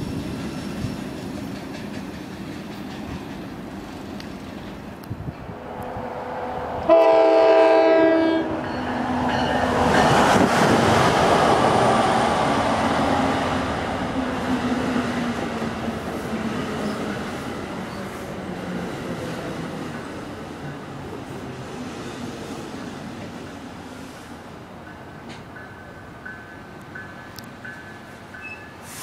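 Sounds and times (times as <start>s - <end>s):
train cars rushing and rumbling past: 0.0s - 29.0s
train horn blast: 6.4s - 8.7s.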